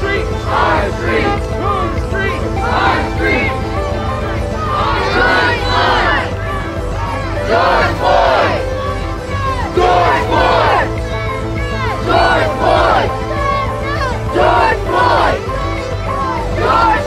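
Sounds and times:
crowd of protesters chanting: 0:00.0 - 0:17.0.

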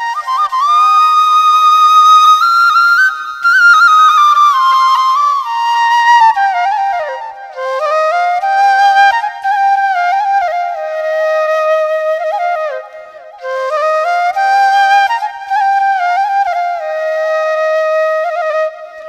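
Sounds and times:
slow flute melody: 0:00.0 - 0:19.0.

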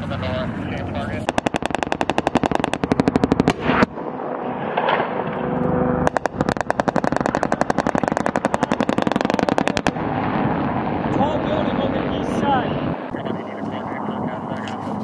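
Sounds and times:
machine gun firing bursts: 0:01.3 - 0:03.9, 0:06.0 - 0:09.9
loud gunshot crack: 0:01.3 - 0:05.2.

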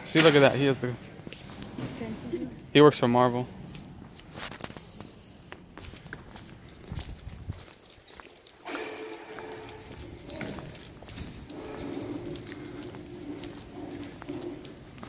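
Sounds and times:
footsteps on concrete floor: 0:00.2 - 0:02.6, 0:03.6 - 0:15.0.

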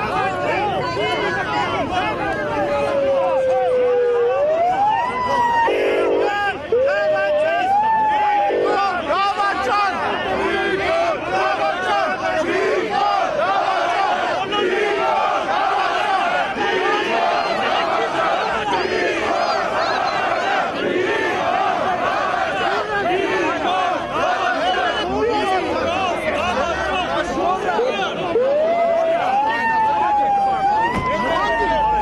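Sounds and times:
crowd shouting: 0:00.0 - 0:32.0.

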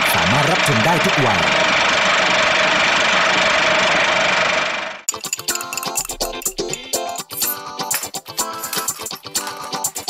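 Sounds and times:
person announcing: 0:00.0 - 0:01.7.

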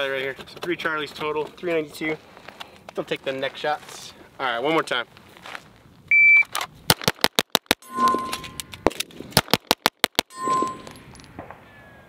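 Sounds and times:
shot timer beep: 0:07.8 - 0:08.7, 0:10.3 - 0:11.0
pistol shot: 0:09.4 - 0:10.4.

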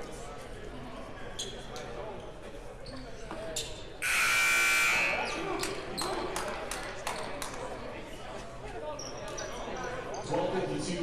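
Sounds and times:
scoreboard horn: 0:04.0 - 0:05.4.

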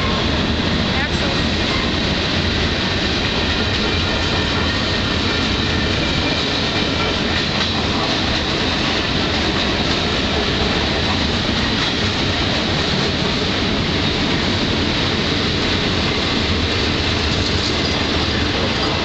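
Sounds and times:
freight train rolling past: 0:00.0 - 0:19.0
wheels on rail: 0:00.0 - 0:19.0.

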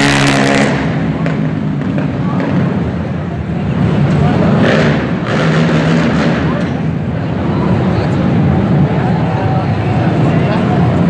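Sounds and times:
racing quad engines: 0:00.0 - 0:11.0.

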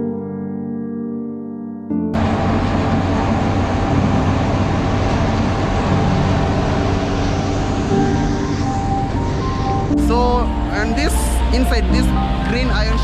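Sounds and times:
heavy diesel machinery engine: 0:02.2 - 0:13.0
road traffic passing: 0:02.2 - 0:13.0.

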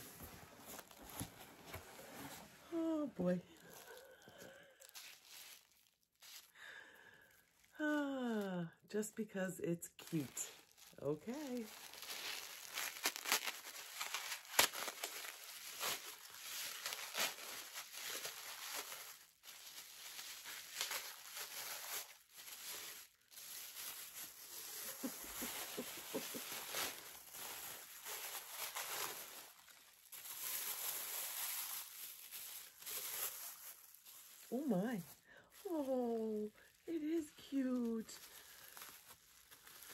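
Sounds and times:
tissue paper crinkling and tearing: 0:00.0 - 0:06.5, 0:10.0 - 0:39.9.

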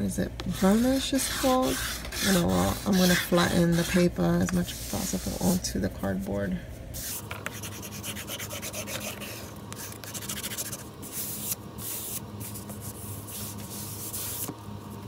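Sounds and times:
paper being rubbed flat: 0:00.5 - 0:04.1, 0:07.0 - 0:14.5.

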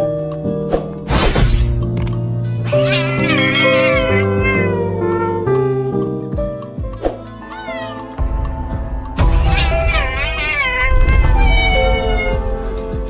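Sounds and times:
background music: 0:00.0 - 0:13.0
cat meowing: 0:02.6 - 0:05.6, 0:07.4 - 0:08.2, 0:09.4 - 0:12.7.

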